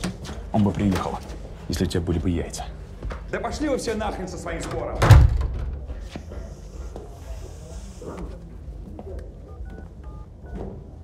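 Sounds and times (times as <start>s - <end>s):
loud thump: 5.0s - 5.8s
phone keypad beeps: 9.5s - 10.7s.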